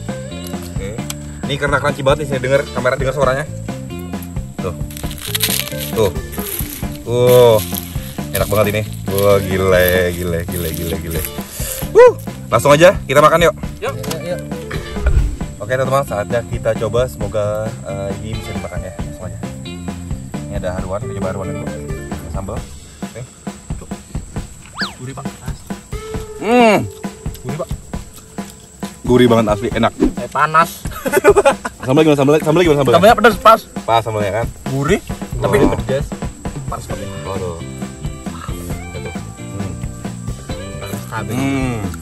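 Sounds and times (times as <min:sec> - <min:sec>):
background music with steady beat: 0:00.0 - 0:42.0
fried fish crunching under pestle: 0:04.8 - 0:12.4
whistle-like sound effect: 0:11.8 - 0:12.3, 0:24.6 - 0:25.1.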